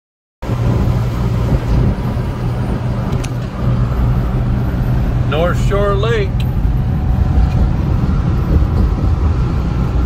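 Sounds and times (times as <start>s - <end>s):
road and tyre noise: 0.4s - 10.0s
truck engine drone: 0.4s - 10.0s.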